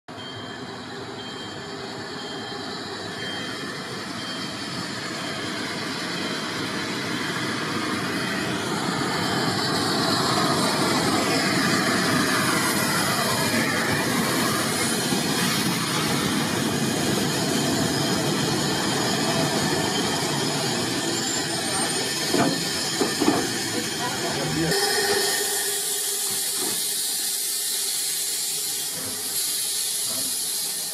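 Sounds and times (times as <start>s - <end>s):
steam train passing: 0.1s - 30.9s.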